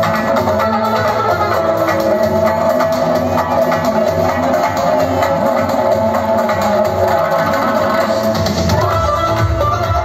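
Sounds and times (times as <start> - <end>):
live band playing dance music: 0.0 - 10.0.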